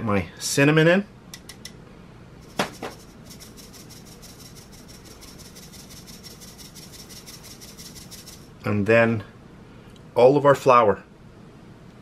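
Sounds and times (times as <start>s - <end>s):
metal sieve mesh ticking: 2.4s - 8.5s
sharp knocks: 2.5s - 3.0s.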